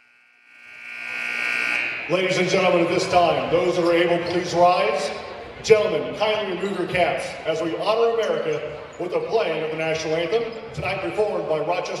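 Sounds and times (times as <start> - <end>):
high-pitched feedback squeal: 0.4 - 4.5.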